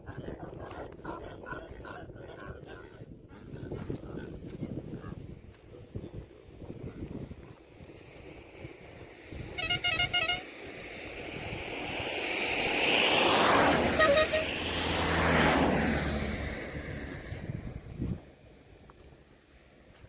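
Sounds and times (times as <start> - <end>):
motor vehicle passing by: 7.8 - 19.7
vehicle horn beeps: 9.5 - 10.4, 14.0 - 14.5.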